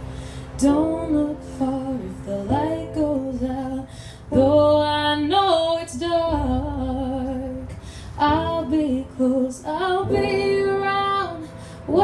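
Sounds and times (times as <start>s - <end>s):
keyboard accompaniment: 0.0s - 12.0s
woman singing: 0.6s - 12.0s.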